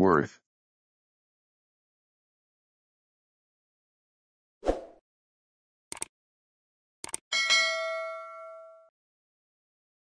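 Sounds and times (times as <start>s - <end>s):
double mouse click: 5.9s - 6.1s
notification bell ding: 7.3s - 8.9s.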